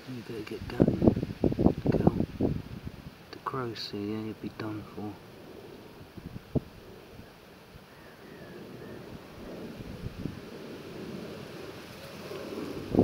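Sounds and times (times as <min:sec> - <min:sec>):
wind rumbling on microphone: 0:00.1 - 0:13.0.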